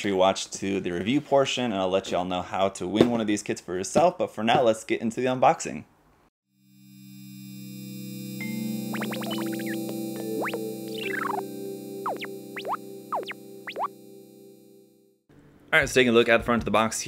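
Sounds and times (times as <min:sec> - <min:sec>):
synthesizer chord: 0:06.6 - 0:15.2
synth sweeps: 0:07.0 - 0:14.8.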